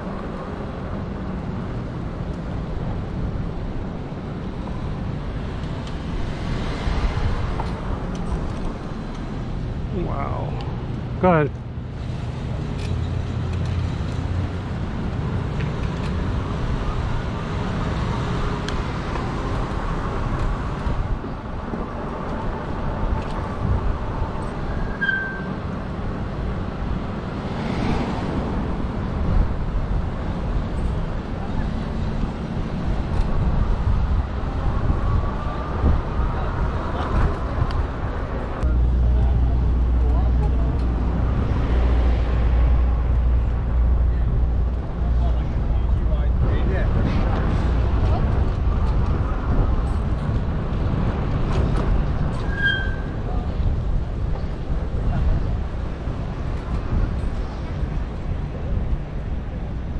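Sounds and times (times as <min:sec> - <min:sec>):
road noise: 0:00.0 - 0:59.9
wind on microphone: 0:14.9 - 0:59.9.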